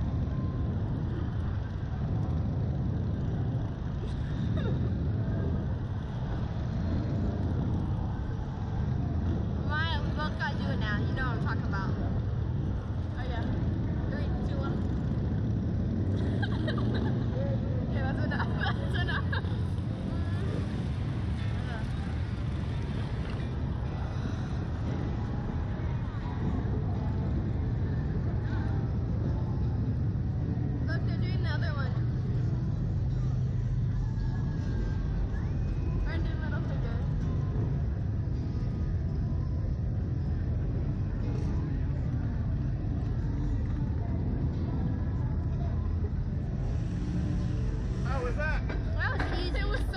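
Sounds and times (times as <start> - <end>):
riders' voices: 0.1 - 38.8, 40.4 - 49.9.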